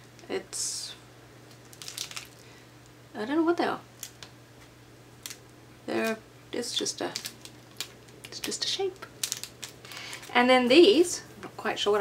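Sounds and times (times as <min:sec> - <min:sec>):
low steady hum: 0:00.0 - 0:12.0
plastic packet crinkling: 0:01.5 - 0:02.5, 0:04.0 - 0:04.3, 0:05.2 - 0:10.4.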